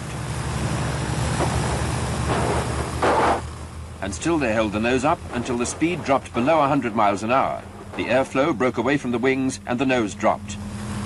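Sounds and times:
piston engines droning: 0:00.0 - 0:11.0.

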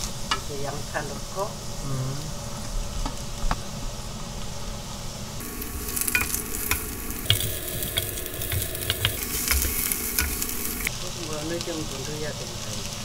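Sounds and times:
vegetables sizzling in oil: 0:00.0 - 0:13.0
spatula clicking against pan: 0:05.9 - 0:10.9.

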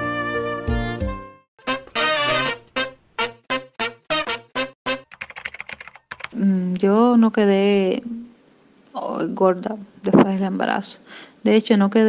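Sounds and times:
keyboard typing clicks: 0:05.1 - 0:06.4
woman speaking: 0:06.3 - 0:08.4, 0:09.0 - 0:12.0.

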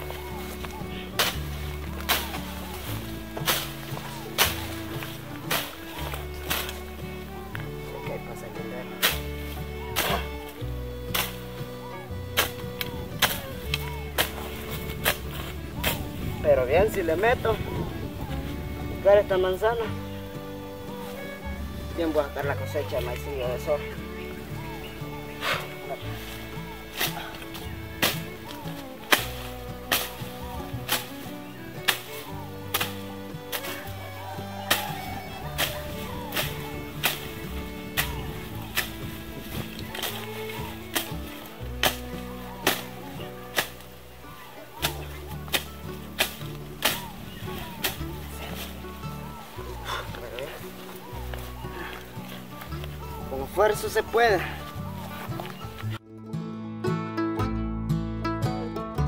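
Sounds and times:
machete chopping brush: 0:00.0 - 0:07.8, 0:08.9 - 0:16.1, 0:24.6 - 0:53.1
background music: 0:00.0 - 0:59.0.

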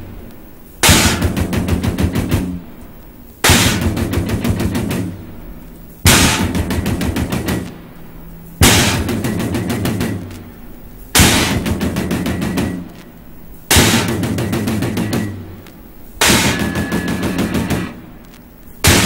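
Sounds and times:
rapid percussive rattling: 0:00.8 - 0:02.8, 0:03.4 - 0:18.2.

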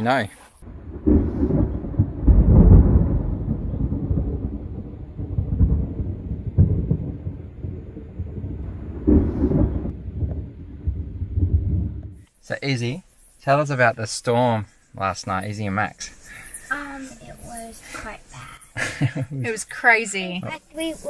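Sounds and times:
sharp thunder crack: 0:00.6 - 0:12.2
thunder rumbling: 0:00.6 - 0:12.3.

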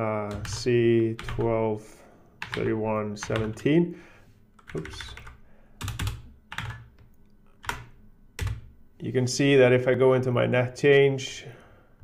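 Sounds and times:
computer keyboard typing: 0:00.2 - 0:01.6, 0:02.4 - 0:03.6, 0:04.6 - 0:07.0, 0:07.6 - 0:08.7.

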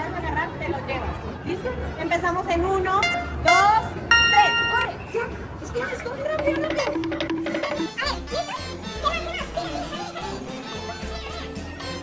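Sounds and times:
electronic countdown beeps: 0:04.1 - 0:05.1, 0:06.4 - 0:08.0.

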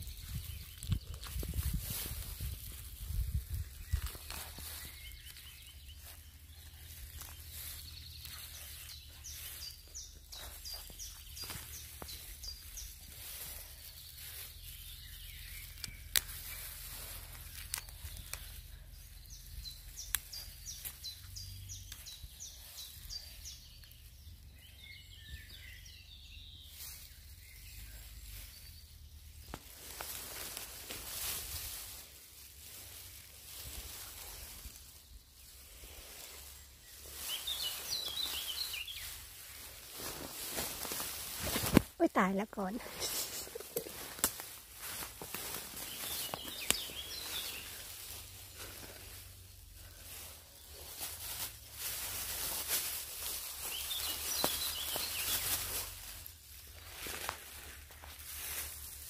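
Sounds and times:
songbirds chirping: 0:00.0 - 0:59.0.

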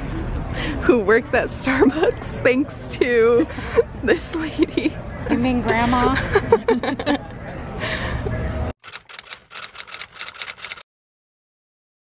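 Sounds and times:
street noise rumble: 0:00.0 - 0:10.8.

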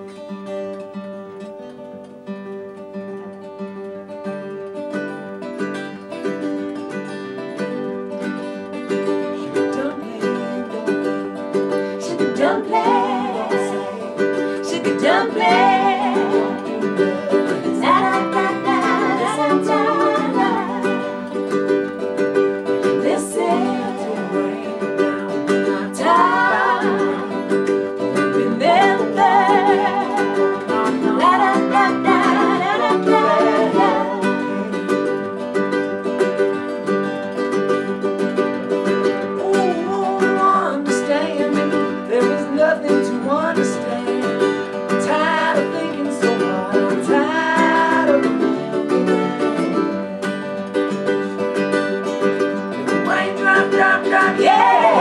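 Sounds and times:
plucked strings: 0:00.0 - 0:55.0
strummed acoustic guitar: 0:00.0 - 0:55.0
person singing: 0:08.5 - 0:35.4, 0:39.1 - 0:50.2, 0:52.1 - 0:55.0.

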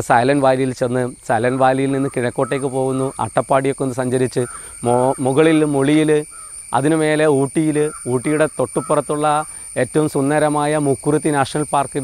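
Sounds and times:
man speaking: 0:00.0 - 0:06.2, 0:06.8 - 0:12.0
high-pitched insect drone: 0:00.0 - 0:12.0.

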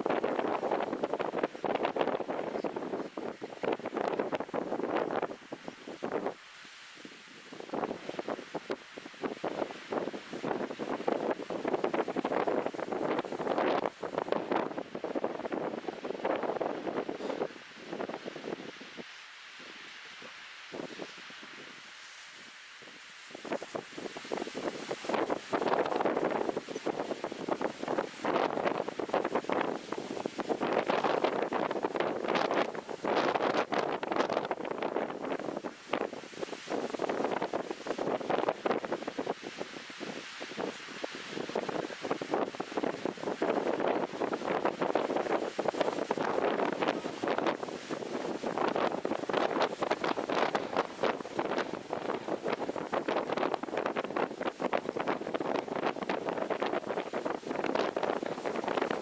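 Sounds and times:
wind buffeting microphone: 0:00.0 - 0:06.4, 0:07.4 - 0:21.9, 0:22.8 - 0:59.0.

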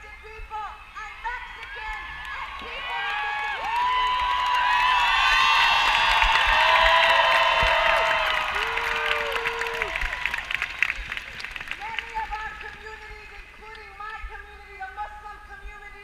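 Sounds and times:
crowd cheering and whooping: 0:00.8 - 0:11.4
scattered clapping: 0:01.5 - 0:13.9.

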